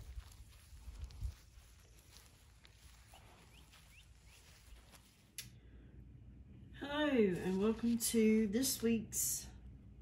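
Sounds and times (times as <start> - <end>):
faint bird chirps: 2.9 - 5.2.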